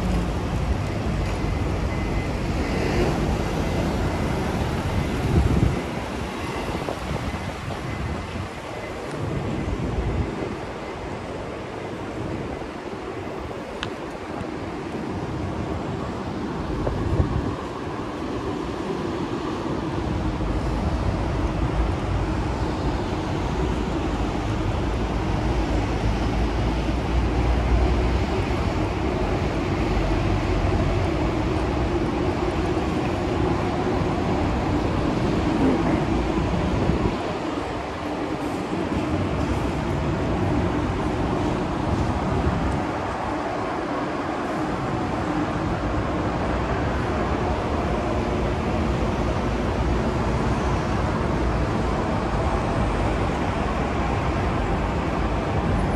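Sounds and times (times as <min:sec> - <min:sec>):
traffic rumble: 0:00.0 - 0:55.9.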